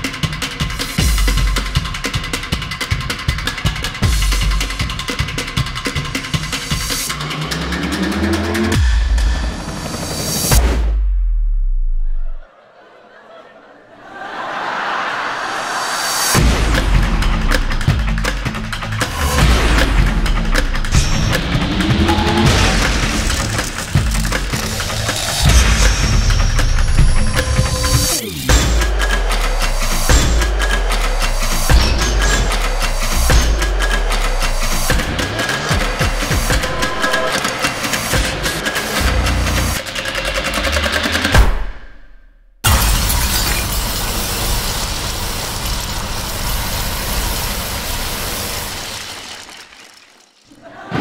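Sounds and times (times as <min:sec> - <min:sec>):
loud percussion music: 0:00.0 - 0:10.9, 0:16.3 - 0:41.9
rapid drumming on metal drums: 0:28.5 - 0:41.7.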